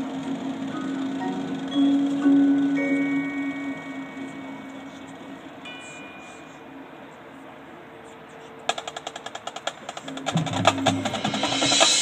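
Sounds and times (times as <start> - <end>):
mallet percussion ringing: 0.0 - 7.1
high bell-like note: 0.8 - 6.9
marching band held chord: 9.0 - 12.0.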